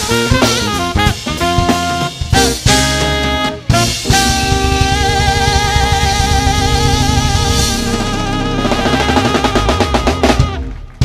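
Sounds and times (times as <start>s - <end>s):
drum kit fills: 0.0s - 11.0s
electric bass: 0.0s - 11.0s
keyboard: 0.0s - 11.0s
saxophone long vibrato note: 0.0s - 11.0s.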